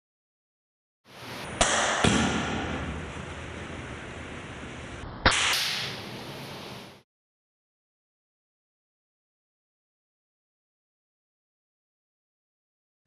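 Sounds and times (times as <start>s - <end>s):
sharp cracks: 5.2s - 6.0s.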